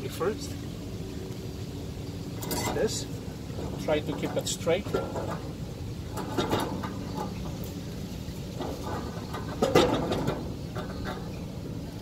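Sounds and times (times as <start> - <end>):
low background hum: 0.0 - 12.0
metal clunk: 2.4 - 7.6, 8.5 - 11.5
metal scraping and knocking: 2.4 - 7.7, 8.5 - 11.5.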